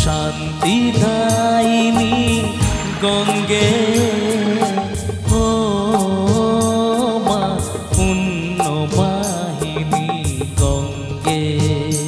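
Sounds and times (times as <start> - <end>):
live band devotional song: 0.0 - 12.0.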